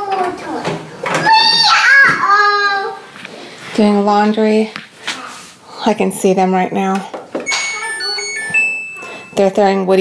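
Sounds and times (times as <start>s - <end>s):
washing machine electronic beep tune: 7.5s - 9.8s.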